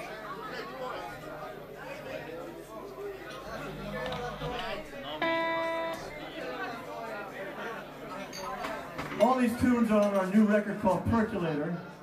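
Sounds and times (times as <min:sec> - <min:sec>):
crowd chatter: 0:00.0 - 0:12.0
guitar note plucked: 0:03.6 - 0:06.6.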